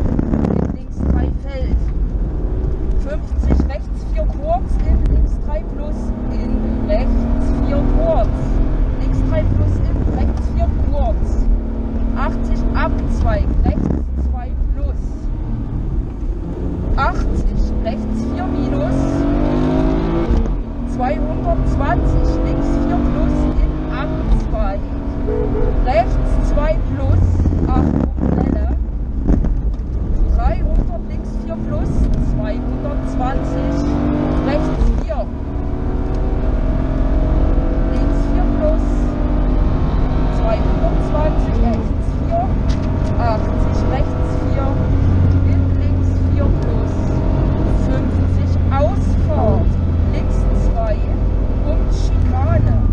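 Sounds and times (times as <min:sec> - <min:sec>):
rally car engine revving: 0:00.0 - 0:52.9.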